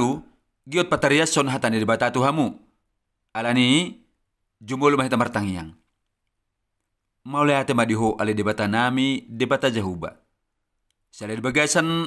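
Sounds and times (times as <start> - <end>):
man speaking: 0.0 - 5.9, 7.2 - 10.3, 11.1 - 12.0.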